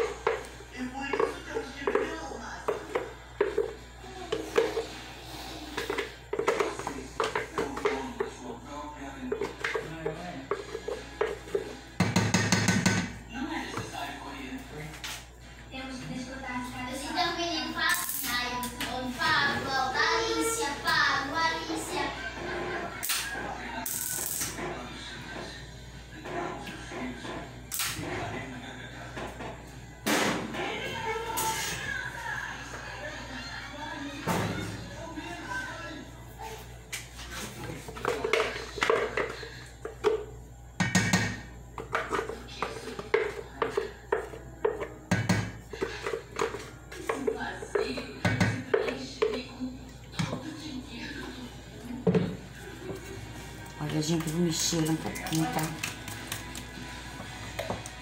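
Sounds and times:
music: 0.0s - 58.0s
knocks on metal cooking pot: 12.0s - 13.2s, 40.8s - 41.5s, 44.2s - 45.6s.

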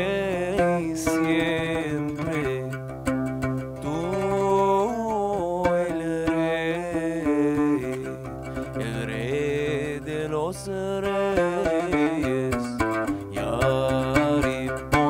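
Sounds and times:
man singing a hymn: 0.0s - 2.7s, 3.8s - 12.7s, 13.3s - 15.0s
oud plucking: 0.0s - 15.0s.

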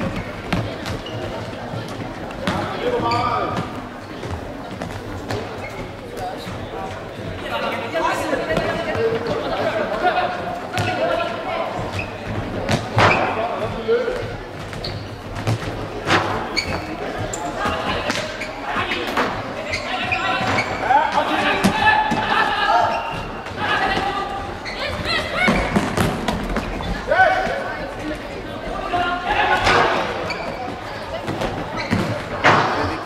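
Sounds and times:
people shouting and chattering: 0.0s - 33.0s.

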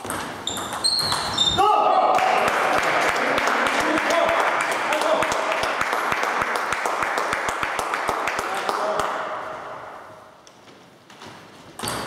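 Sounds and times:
spectators clapping: 2.1s - 9.2s.

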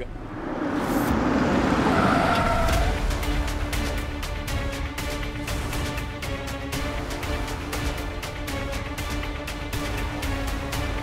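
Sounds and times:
car driving past: 0.0s - 3.4s.

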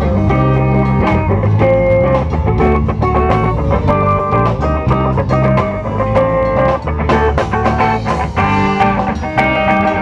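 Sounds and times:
live band playing worship song: 0.0s - 10.0s.

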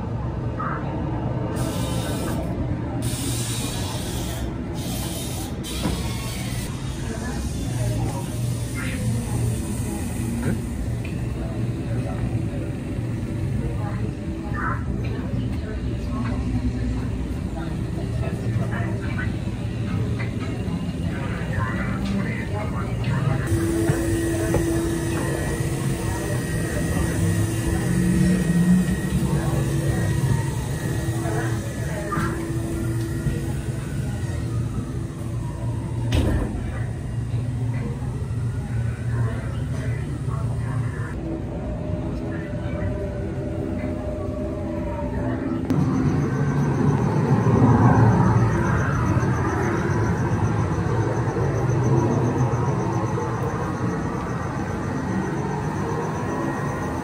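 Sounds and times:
indistinct background voices: 0.0s - 57.0s
steady held tone: 22.3s - 57.0s.

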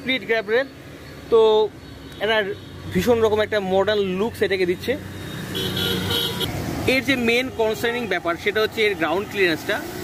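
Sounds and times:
road traffic: 0.0s - 10.0s
vehicle horn: 5.3s - 6.5s.

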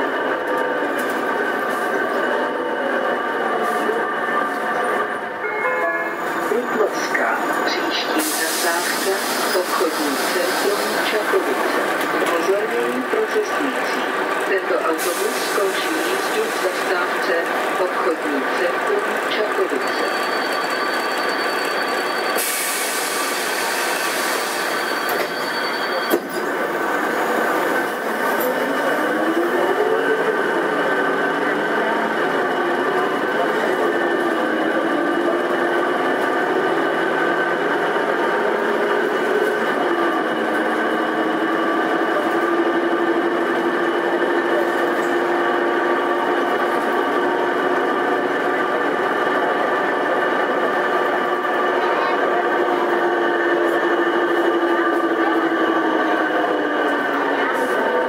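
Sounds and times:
bus engine running: 0.0s - 5.4s, 6.2s - 58.0s.

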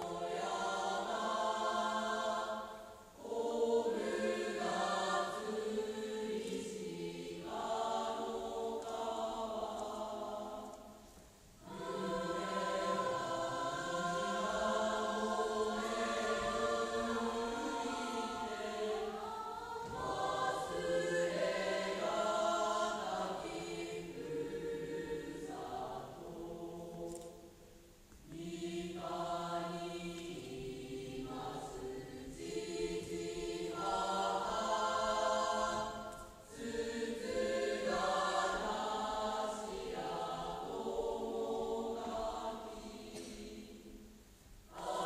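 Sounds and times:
choir singing slowly: 0.0s - 45.0s.

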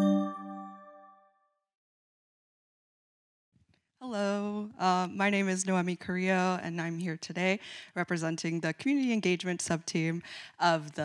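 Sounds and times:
bell-like chime: 0.0s - 1.3s.

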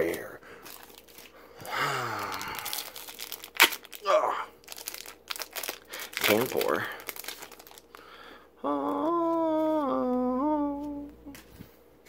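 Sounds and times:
wrapper cracking: 0.0s - 8.0s
foil wrapper crinkling and tearing: 0.0s - 8.1s.

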